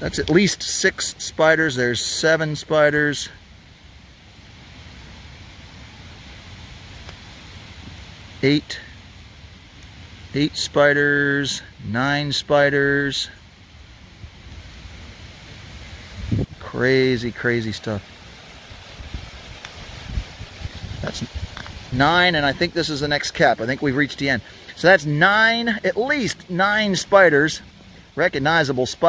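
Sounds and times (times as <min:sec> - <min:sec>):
even hiss: 0:00.0 - 0:29.0
faint clicks: 0:09.8 - 0:10.0
wind rumbling on microphone: 0:13.5 - 0:24.0.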